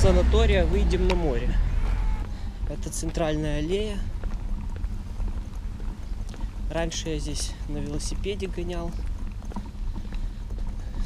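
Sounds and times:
stroller wheels rolling on tiles: 0.0s - 11.0s.

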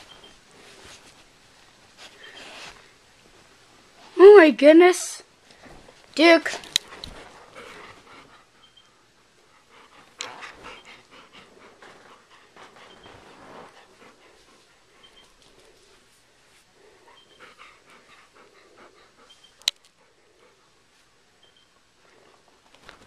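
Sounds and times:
dog panting: 6.5s - 22.5s
faint high squeaks: 12.8s - 13.4s, 21.4s - 21.8s.

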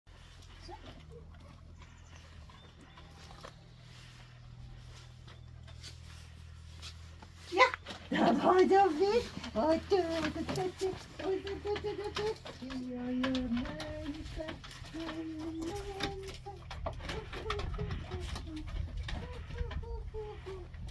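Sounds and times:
steady low hum: 0.1s - 7.9s
paws clicking on wooden boards: 0.1s - 20.9s.

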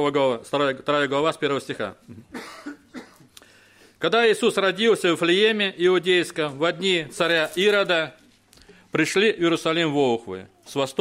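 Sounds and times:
person coughing: 2.1s - 3.4s.

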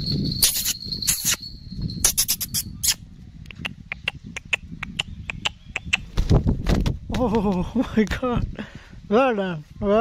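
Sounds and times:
high squeaking mouth clicks: 0.4s - 1.4s, 2.0s - 6.1s.

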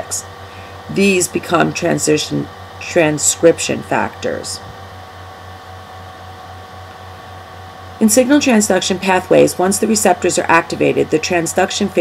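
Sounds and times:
low pulsing hum: 0.0s - 12.0s.

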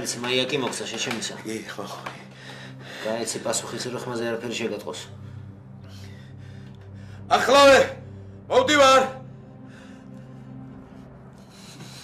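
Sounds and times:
low background music tones: 0.0s - 12.0s.

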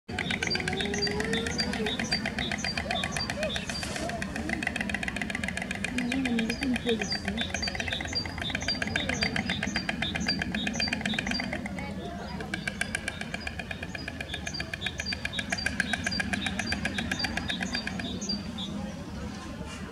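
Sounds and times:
stork bill clattering: 0.1s - 18.7s.

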